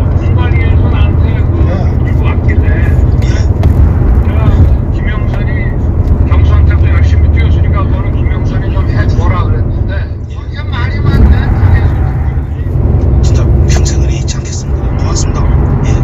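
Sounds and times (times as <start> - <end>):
heavy low rumble: 0.0 - 16.0
man talking on phone call: 4.3 - 16.0.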